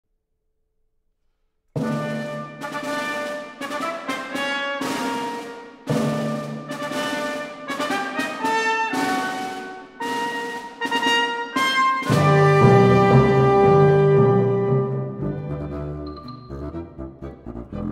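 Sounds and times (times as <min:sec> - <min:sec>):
orchestra playing classical music: 0:01.8 - 0:17.9.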